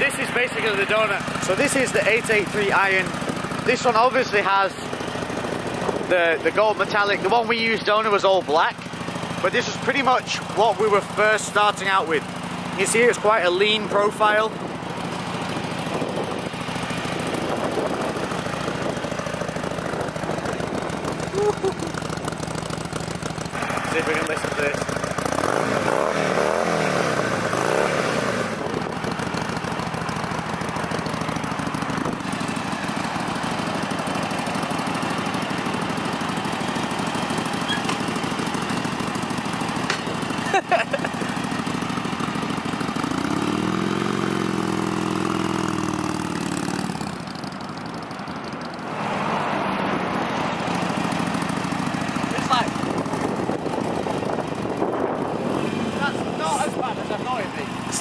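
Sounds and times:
motorcycle engine idling: 0.0 - 25.9, 28.5 - 48.9, 49.9 - 58.0
motorcycle engine revving: 0.0 - 58.0.

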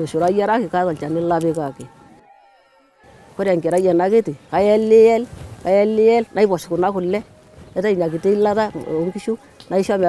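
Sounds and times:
woman speaking: 0.0 - 1.9, 3.4 - 10.0.

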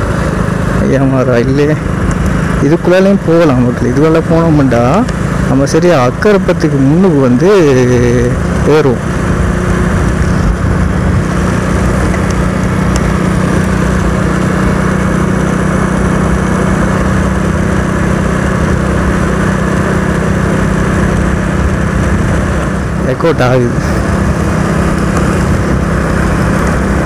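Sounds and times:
motorcycle engine running: 0.0 - 27.0.

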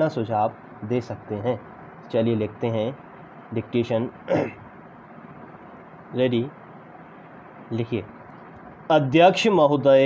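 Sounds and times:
low background hiss: 0.0 - 10.0
man clearing his throat: 4.3 - 4.7.

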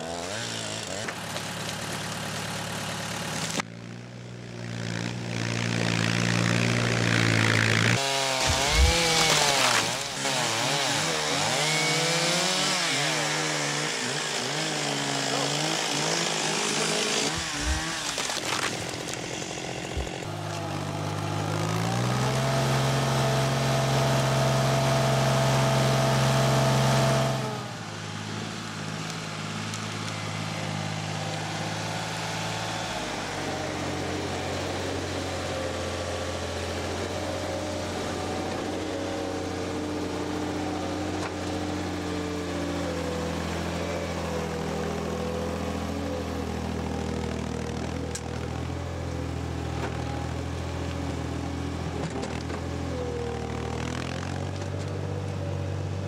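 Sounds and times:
chainsaw cutting through log: 0.0 - 56.0.

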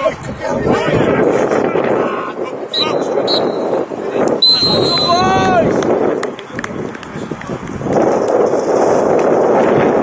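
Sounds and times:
steady outdoor rushing: 0.0 - 10.0.

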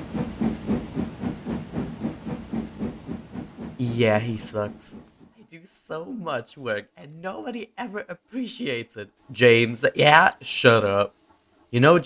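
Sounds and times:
steam locomotive chuffing: 0.0 - 5.4.

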